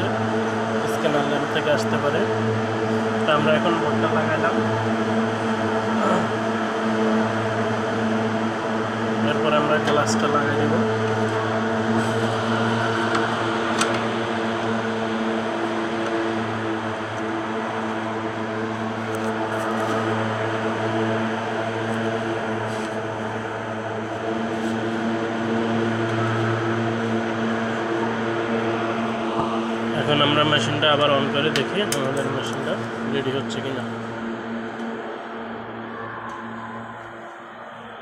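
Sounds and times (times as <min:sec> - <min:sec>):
low machine hum: 0:00.0 - 0:38.0.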